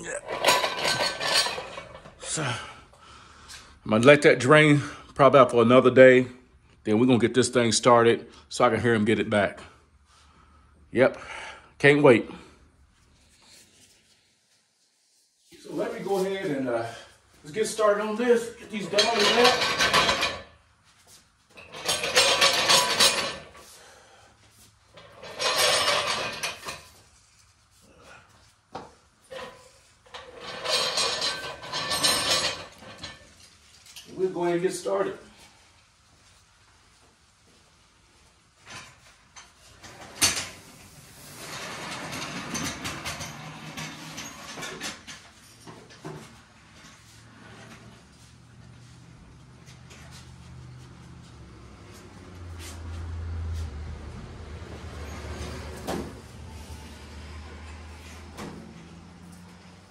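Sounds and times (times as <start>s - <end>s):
metal dollies rolling on concrete: 0.2s - 2.2s, 17.7s - 20.6s, 21.5s - 23.7s, 24.9s - 27.0s, 29.3s - 34.0s, 38.7s - 47.8s
scraping and clattering handling noise: 0.3s - 2.2s, 18.7s - 23.8s, 24.6s - 27.7s, 28.7s - 34.2s, 38.5s - 53.6s.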